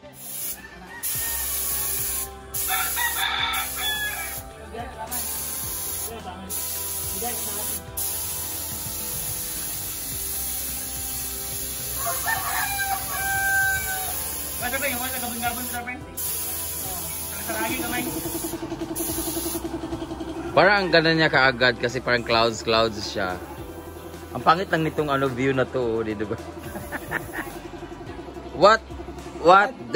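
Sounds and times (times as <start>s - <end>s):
paint spray gun hissing: 0.0s - 4.5s, 5.1s - 19.9s, 22.7s - 25.6s, 26.6s - 27.6s
rooster crowing: 0.5s - 4.4s, 12.0s - 14.4s, 20.4s - 21.5s.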